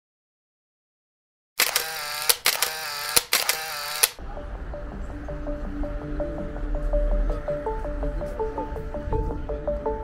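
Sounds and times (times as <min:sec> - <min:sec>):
sharp clicks: 0:01.6 - 0:04.2
soft music bed: 0:04.2 - 0:10.0.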